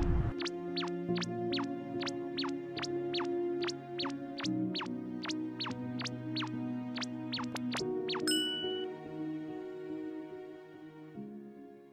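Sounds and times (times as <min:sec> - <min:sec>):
soft background music: 0:00.0 - 0:11.9
bright ding chime: 0:08.2 - 0:08.9.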